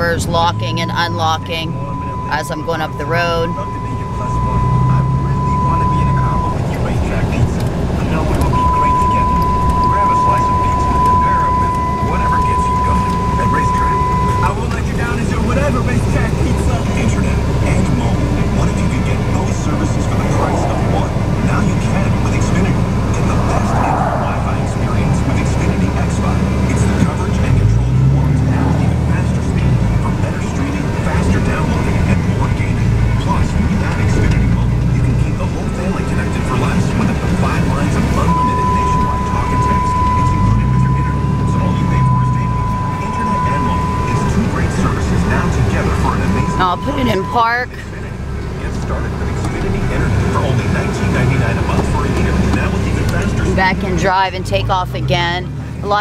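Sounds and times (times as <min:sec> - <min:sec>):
steady high-pitched tone: 0:00.0 - 0:07.4, 0:08.0 - 0:16.2, 0:37.4 - 0:47.9
truck engine and road drone: 0:00.0 - 0:56.0.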